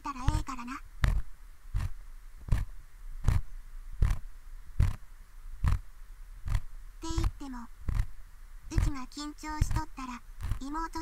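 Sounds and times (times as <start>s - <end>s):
ear pick scraping: 0.2s - 10.8s.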